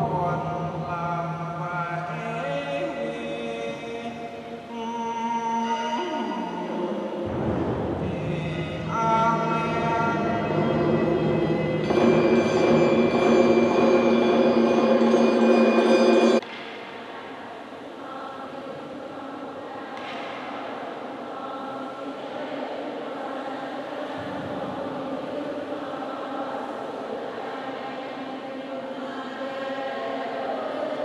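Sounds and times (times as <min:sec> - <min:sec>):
choir singing a hymn: 0:00.0 - 0:16.4, 0:17.1 - 0:31.0
quiet chanted singing: 0:00.0 - 0:31.0.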